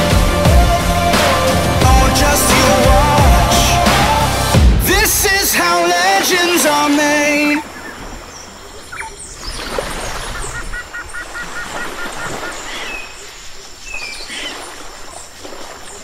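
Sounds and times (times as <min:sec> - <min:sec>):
birds calling: 0:07.5 - 0:16.0
rapid bird chirping: 0:07.8 - 0:14.6.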